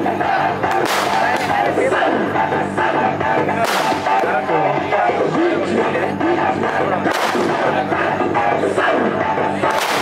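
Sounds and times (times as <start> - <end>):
music: 0.0 - 10.0
voices: 0.0 - 10.0.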